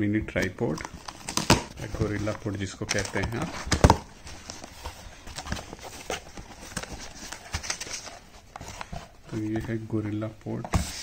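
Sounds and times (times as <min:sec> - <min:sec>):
cardboard and paper rustling: 0:00.6 - 0:11.0.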